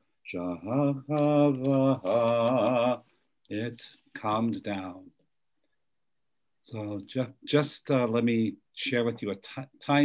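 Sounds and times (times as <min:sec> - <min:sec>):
man chanting: 0:00.3 - 0:05.1.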